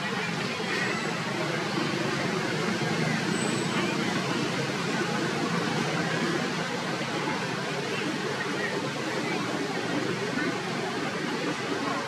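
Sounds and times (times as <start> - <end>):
steady outdoor background noise: 0.0 - 12.0.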